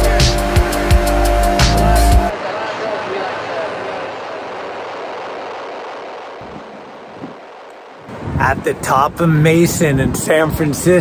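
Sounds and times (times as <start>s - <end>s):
ocean waves breaking: 2.3s - 9.3s.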